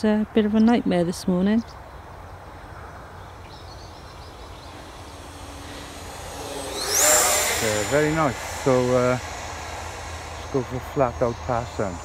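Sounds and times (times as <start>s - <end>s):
high whine rising in pitch: 2.4s - 12.0s
electric ducted fan rushing: 3.3s - 12.0s.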